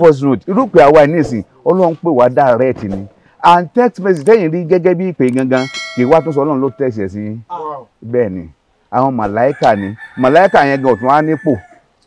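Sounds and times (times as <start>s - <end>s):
man speaking loudly: 0.0s - 11.6s
rooster crowing: 9.5s - 11.9s.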